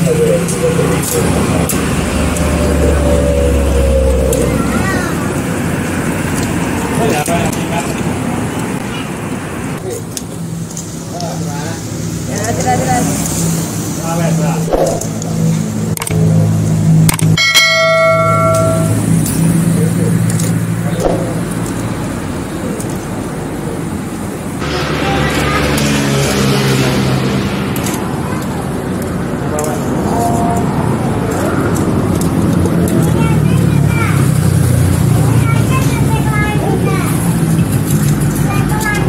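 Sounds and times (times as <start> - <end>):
bell-like ding: 17.4 - 19.2.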